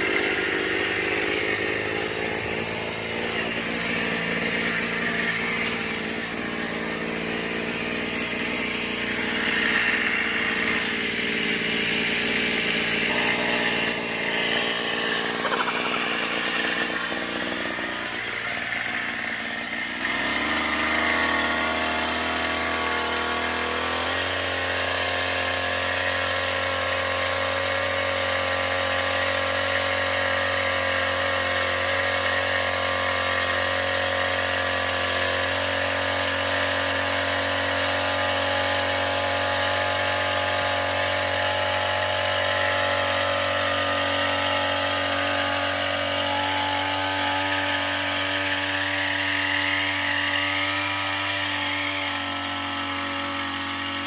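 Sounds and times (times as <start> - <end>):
small two-stroke engine running: 0.0 - 54.0.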